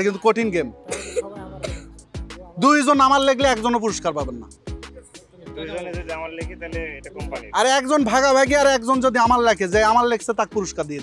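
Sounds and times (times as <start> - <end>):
background music: 0.0 - 11.0
man calling out: 5.6 - 8.6.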